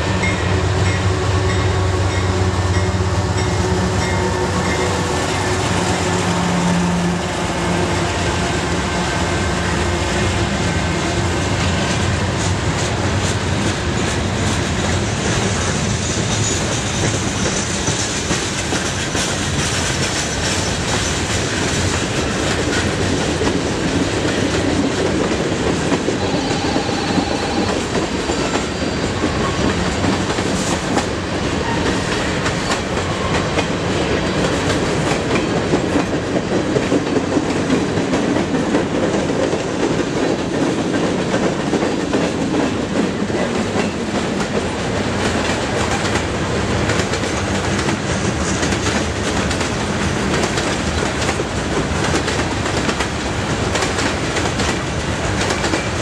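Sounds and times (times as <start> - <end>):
freight train rumbling: 0.0 - 56.0
train wheel squeal: 15.5 - 19.4, 26.2 - 30.9, 31.5 - 33.6.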